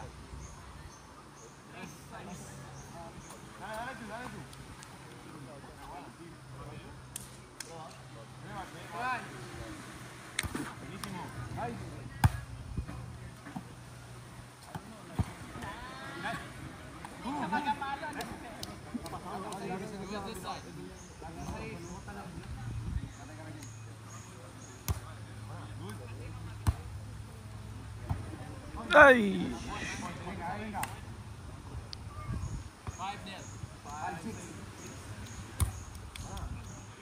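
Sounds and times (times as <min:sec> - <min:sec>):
players' voices and shouts: 0:28.7 - 0:30.9
volleyball hits: 0:35.2 - 0:36.4.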